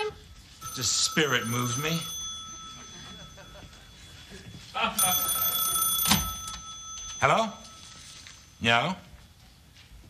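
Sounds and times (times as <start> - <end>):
telephone bell ringing: 0.5 - 9.1.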